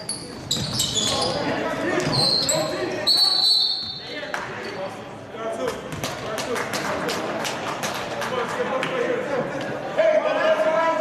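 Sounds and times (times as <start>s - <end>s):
sneakers squeaking: 0.0s - 5.0s
players' voices: 0.0s - 11.0s.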